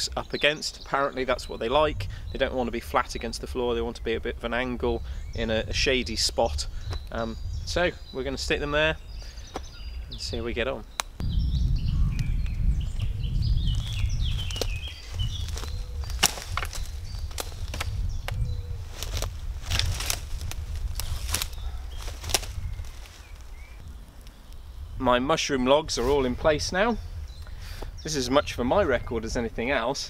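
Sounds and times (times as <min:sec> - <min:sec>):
birds chirping: 0:00.0 - 0:30.0
low rumble: 0:11.2 - 0:25.3
wooden logs knocking: 0:15.5 - 0:18.4.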